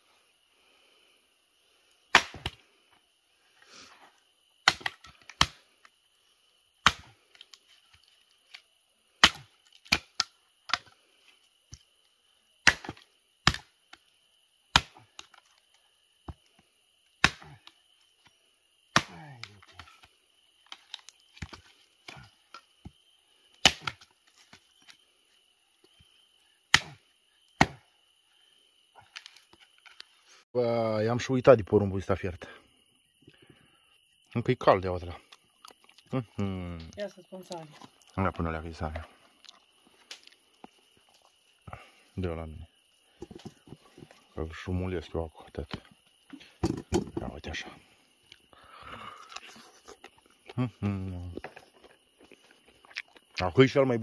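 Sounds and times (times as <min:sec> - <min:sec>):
hatchet chopping wood: 0:02.1 - 0:02.6, 0:04.6 - 0:05.6, 0:06.8 - 0:07.2, 0:09.2 - 0:10.8, 0:12.6 - 0:13.8, 0:14.7 - 0:15.4, 0:17.2 - 0:17.6, 0:18.9 - 0:20.0, 0:23.6 - 0:24.1, 0:26.7 - 0:27.0, 0:27.6 - 0:27.8.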